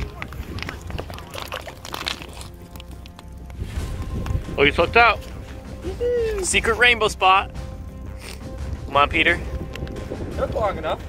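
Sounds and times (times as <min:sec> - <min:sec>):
water sloshing and splashing: 0:00.0 - 0:05.8.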